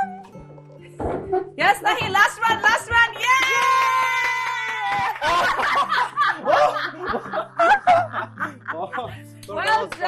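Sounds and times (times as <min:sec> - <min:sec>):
people laughing and giggling: 0:03.2 - 0:10.0.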